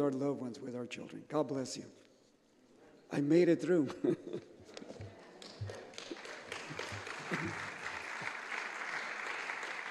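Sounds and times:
congregation applauding: 0:05.2 - 0:09.9.

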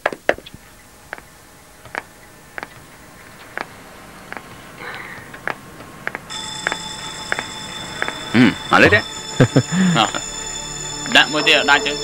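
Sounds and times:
high-pitched electronic ringing tone: 0:06.3 - 0:12.0.

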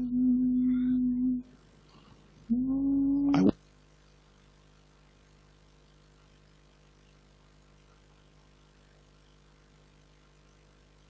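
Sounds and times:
person intoning a long note: 0:00.0 - 0:01.4, 0:02.5 - 0:03.5.

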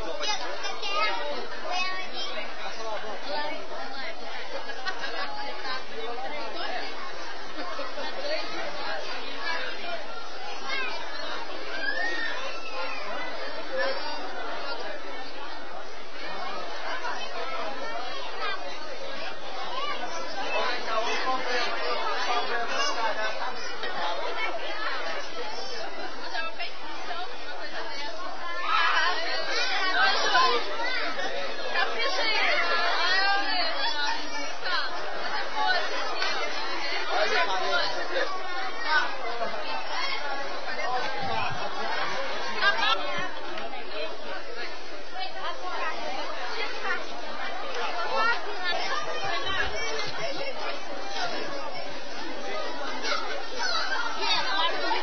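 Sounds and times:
crowd chatter: 0:00.0 - 0:55.0.

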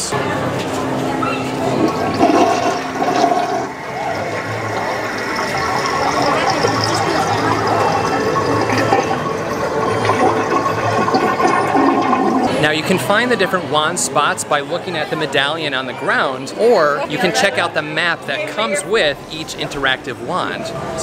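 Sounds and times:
toilet flushing: 0:01.4 - 0:13.6.

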